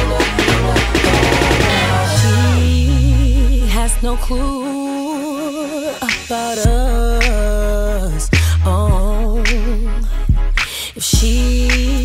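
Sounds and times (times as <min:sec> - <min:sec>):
deep bass line: 0:00.0 - 0:04.6, 0:06.7 - 0:12.0
sharp drum hits: 0:00.2 - 0:02.4.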